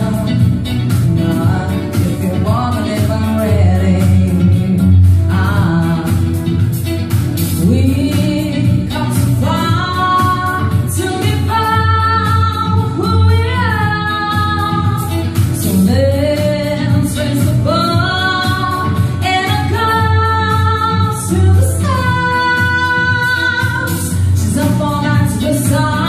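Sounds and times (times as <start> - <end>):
backing track with bass: 0.0 - 26.0
woman singing: 0.0 - 26.0.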